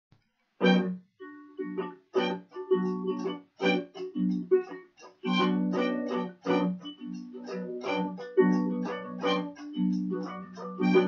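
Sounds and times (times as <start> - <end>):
harmonica chords: 0.6 - 11.0
strummed acoustic guitar: 0.6 - 11.0.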